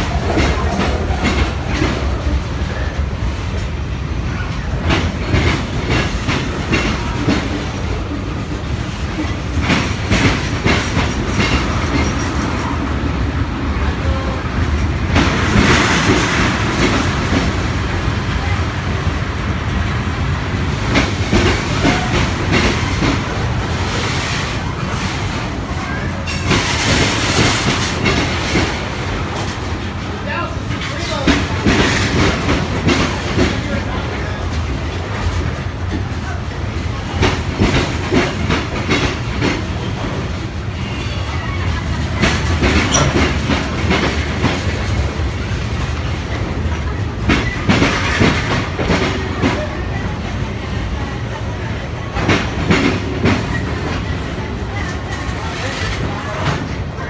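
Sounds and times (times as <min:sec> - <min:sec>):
wheels clacking over rail joints: 0:00.0 - 0:02.5, 0:41.7 - 0:50.0
freight train rumbling past: 0:00.0 - 0:57.0.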